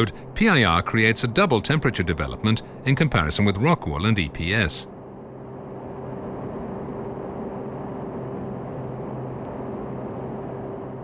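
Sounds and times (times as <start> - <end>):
faint hum: 0.0 - 11.0
low rumbling noise: 0.0 - 11.0.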